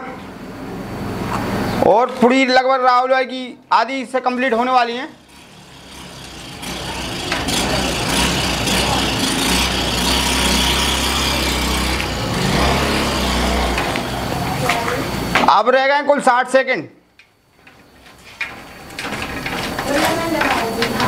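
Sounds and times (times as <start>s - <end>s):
low heavy engine noise: 5.2s - 15.6s.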